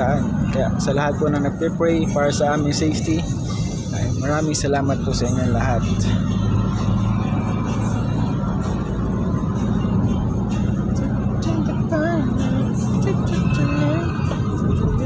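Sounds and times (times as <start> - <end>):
car engine and road noise: 0.0 - 15.0
wavering pitched voice: 13.0 - 14.4.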